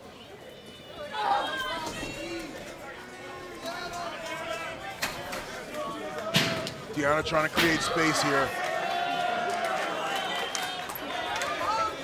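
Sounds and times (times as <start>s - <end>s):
crowd voices and shouts: 0.0s - 12.0s.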